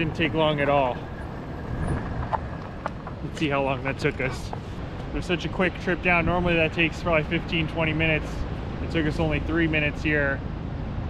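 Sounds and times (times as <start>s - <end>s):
bike rolling on dirt path: 0.0s - 5.2s.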